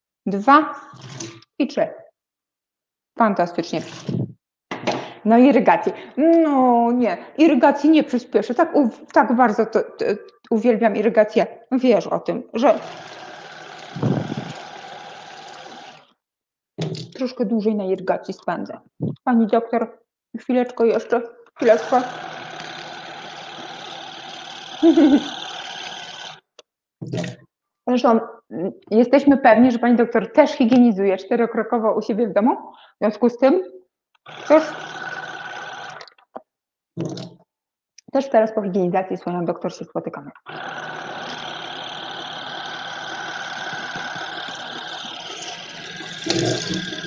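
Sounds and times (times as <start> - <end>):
pump motor drone: 12.6 - 16.1, 21.6 - 26.4, 34.2 - 36.1, 40.4 - 47.0
water jet hissing: 12.8 - 16.1, 40.5 - 47.0
person speaking: 17.1 - 19.8, 20.4 - 22.2.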